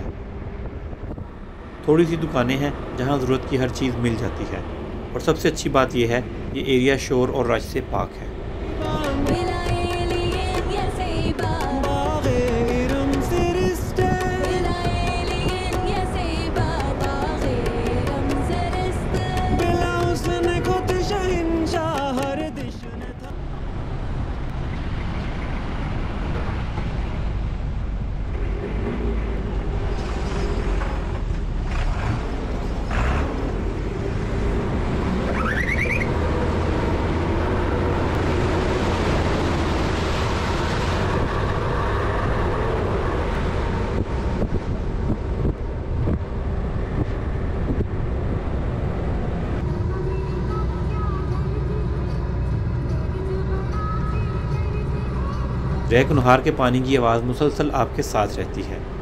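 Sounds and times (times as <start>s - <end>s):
vehicle engine and road noise: 0.0s - 59.0s
background music: 8.3s - 23.7s, 49.6s - 59.0s.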